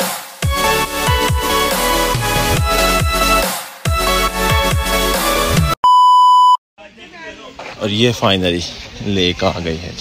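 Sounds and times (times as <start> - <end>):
test-tone beep: 5.8 - 6.6
faint outdoor background: 5.9 - 10.0.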